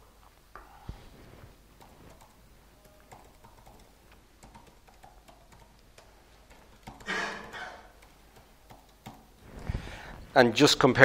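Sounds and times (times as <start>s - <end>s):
keyboard clicks: 1.8s - 9.5s.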